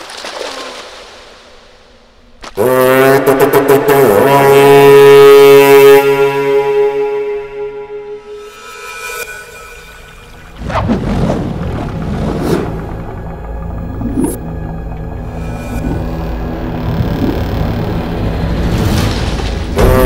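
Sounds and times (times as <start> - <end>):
deep rumble: 10.3 - 20.0.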